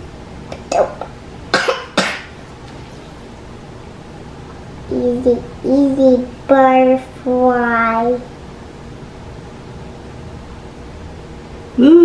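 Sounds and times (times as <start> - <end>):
woman coughing: 0.7 - 2.3.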